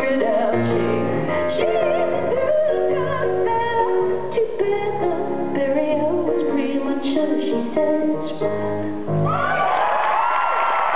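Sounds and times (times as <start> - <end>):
woman singing: 0.0 - 8.8
piano chords: 0.0 - 10.9.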